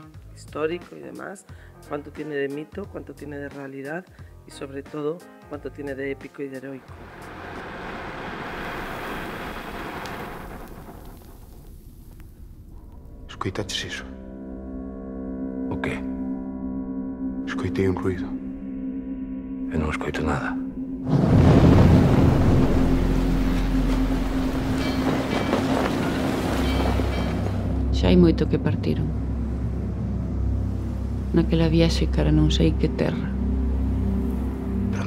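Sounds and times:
dull rushing noise: 0:06.8 - 0:12.8, 0:21.0 - 0:32.2
low rumble: 0:06.8 - 0:35.0
low held tone: 0:14.3 - 0:21.1.

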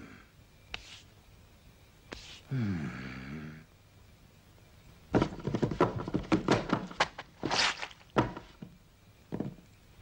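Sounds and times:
soft thuds and knocks: 0:05.1 - 0:09.8.

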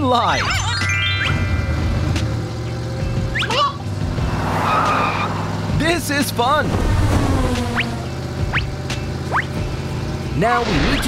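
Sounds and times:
cartoon car engine hum: 0:00.0 - 0:11.0
hissing screech: 0:04.2 - 0:05.6.

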